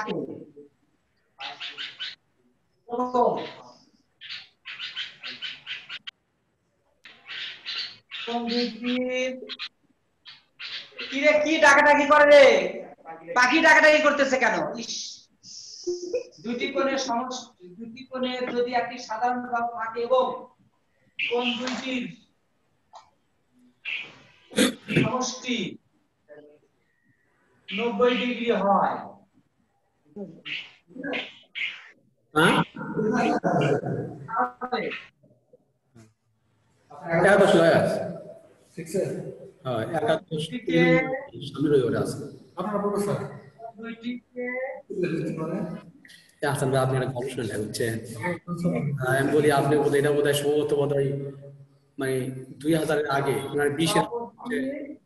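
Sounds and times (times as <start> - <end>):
marker squeaking on whiteboard: 7.1 - 11.5, 21.2 - 22.0
man speaking loudly: 37.1 - 43.4, 46.4 - 51.4, 52.0 - 54.6.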